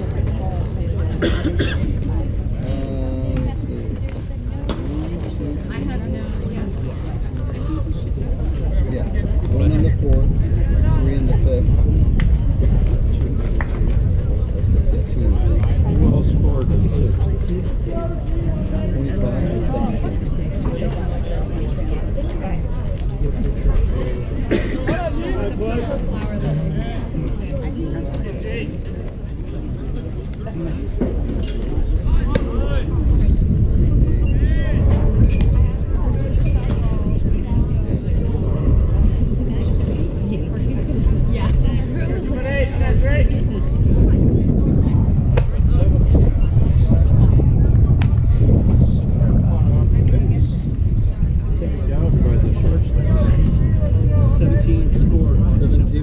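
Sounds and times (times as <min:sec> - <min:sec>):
people talking and calling: 0:00.0 - 0:56.0
steady low rumble: 0:00.0 - 0:56.0.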